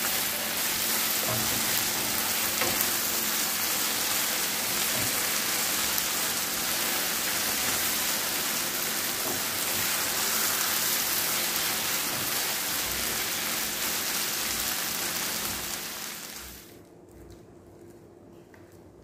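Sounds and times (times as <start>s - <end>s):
vegetables sizzling in a frying pan: 0.0s - 16.7s.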